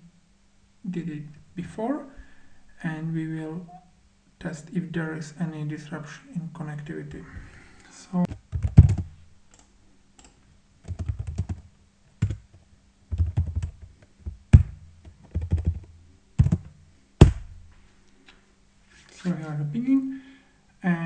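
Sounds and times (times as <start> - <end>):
typing on computer keyboard: 8.3 - 11.6, 12.2 - 12.5, 13.1 - 13.8, 15.2 - 15.8.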